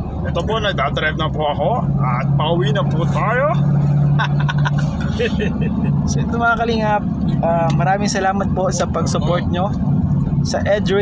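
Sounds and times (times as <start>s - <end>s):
vehicle engine and road drone: 0.0s - 11.0s.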